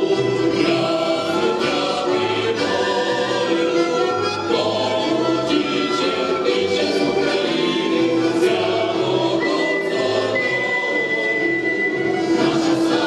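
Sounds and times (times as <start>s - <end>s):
accordion: 0.0s - 13.0s
mixed choir singing folk song: 0.0s - 13.0s.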